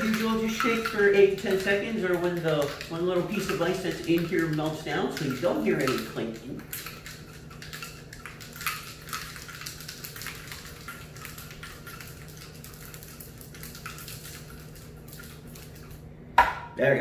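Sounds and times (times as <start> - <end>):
ice rattling in cocktail shaker: 0.0 - 16.0.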